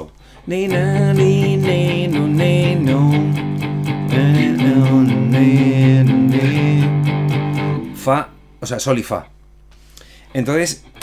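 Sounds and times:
sustained low guitar chord: 0.7 - 8.4
electric guitar lead with bends: 0.7 - 8.5.

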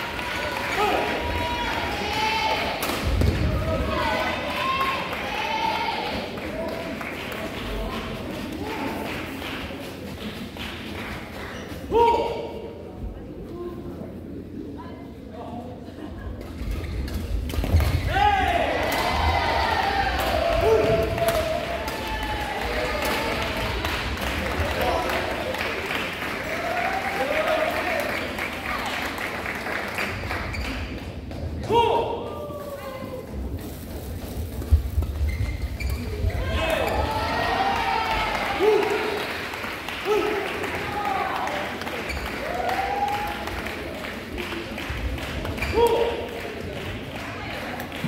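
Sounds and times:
footwork on court floor: 30.2 - 39.2
shoe squeaks: 35.2 - 36.3.

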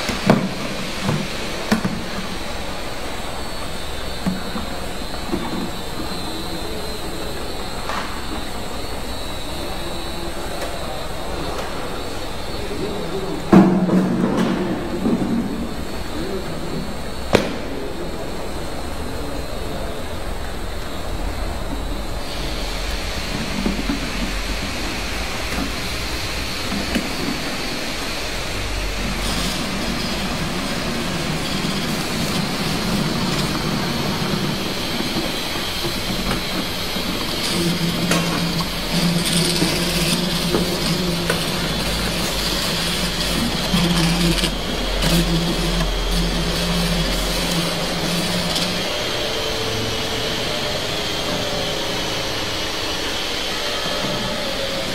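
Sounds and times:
high thin whine: 0.0 - 54.9
labeling machine running: 0.0 - 54.9.

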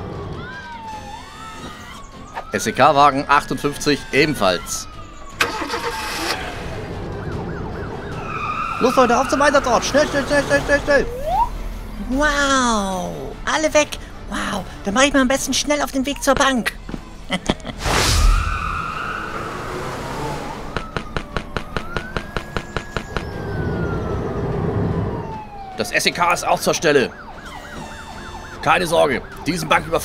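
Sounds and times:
police siren wailing: 0.0 - 12.8, 18.2 - 30.0
vehicle engine rumble: 16.2 - 25.8
whoosh: 17.8 - 20.7
fast regular clicking: 20.8 - 23.2.

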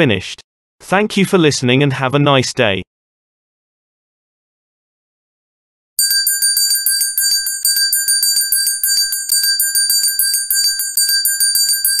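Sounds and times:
bell-like ringing tremolo: 6.0 - 12.0.

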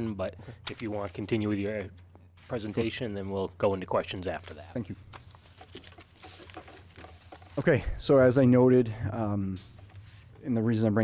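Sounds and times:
faint clicks and rustles: 4.3 - 7.8.

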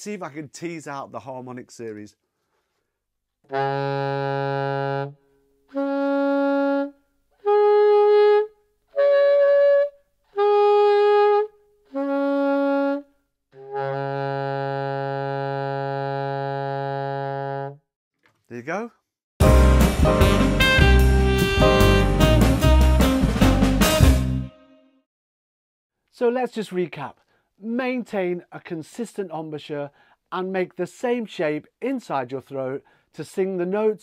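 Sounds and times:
alto saxophone notes: 3.5 - 17.8, 19.4 - 24.6.

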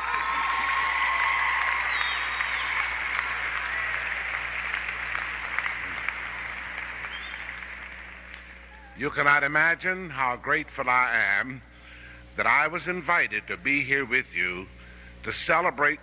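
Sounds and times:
crowd applauding: 0.0 - 9.0.

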